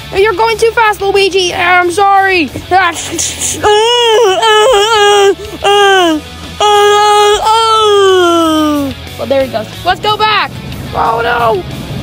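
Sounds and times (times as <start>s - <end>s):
high-pitched voice wailing: 3.6s - 8.9s.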